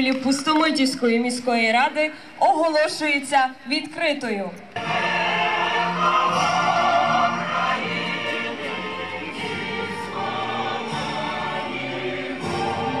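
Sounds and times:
choir singing held notes: 4.8s - 13.0s.

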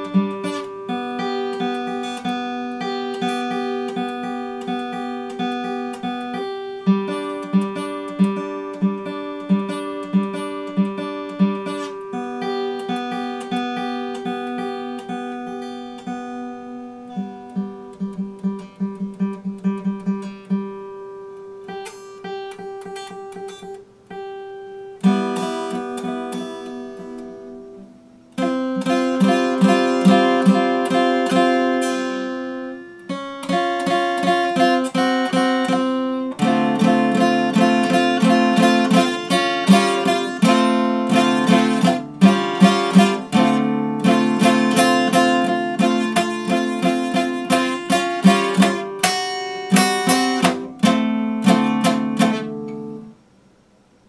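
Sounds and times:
acoustic guitar picked notes: 0.0s - 54.0s
acoustic guitar strummed chords: 0.0s - 54.0s.

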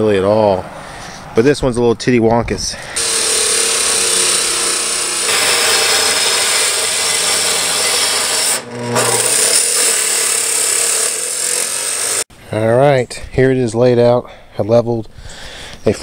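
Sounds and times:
chop saw cutting steel: 3.0s - 12.3s.

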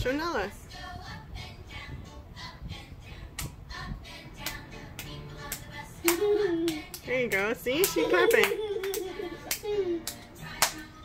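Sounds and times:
woman speaking: 0.0s - 0.6s, 7.0s - 8.6s
small hands clapping: 4.4s - 11.0s
song with singing and beat: 8.9s - 11.0s.

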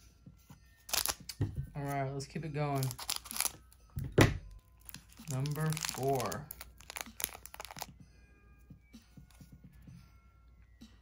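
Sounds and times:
wrapper crinkling: 0.9s - 1.3s, 2.7s - 3.7s, 4.7s - 7.9s
scissors snipping foil: 0.9s - 1.4s, 2.8s - 3.6s, 4.8s - 7.9s.

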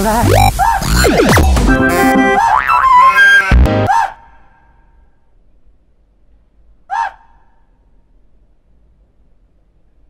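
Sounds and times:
electronic dance music: 0.0s - 3.9s
synth blip: 0.2s - 3.9s.

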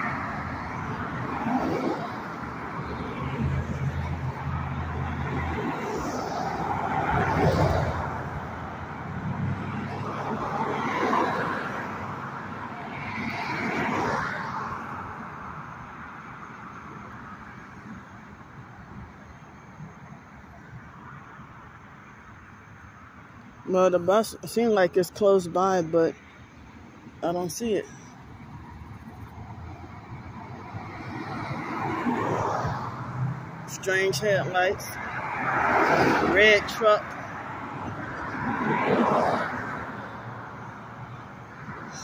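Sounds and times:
cars passing: 0.0s - 42.0s
steady traffic noise: 0.0s - 42.0s.

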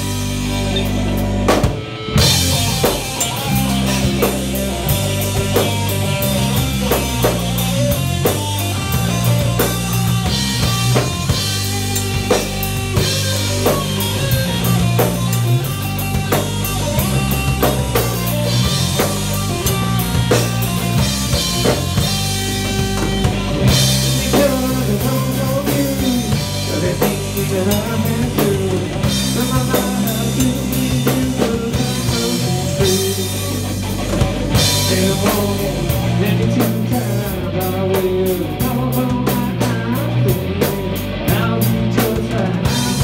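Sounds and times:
drum kit beat: 0.0s - 43.0s
electric bass: 0.0s - 43.0s
electric guitar: 0.0s - 43.0s.

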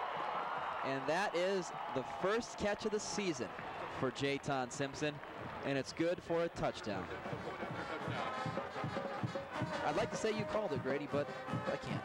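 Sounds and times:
stadium music: 0.1s - 12.0s.

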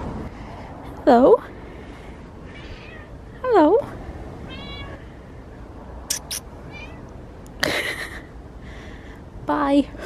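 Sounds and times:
cat meowing: 2.5s - 3.2s, 4.5s - 5.0s, 6.1s - 7.1s.

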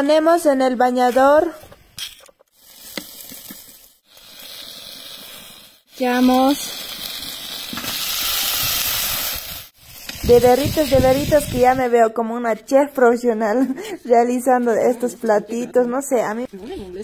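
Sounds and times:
vegetables sizzling in a frying pan: 2.6s - 11.7s.

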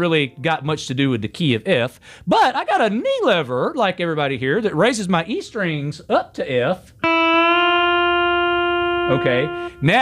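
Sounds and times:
pedal steel guitar sustained note: 7.0s - 9.8s.

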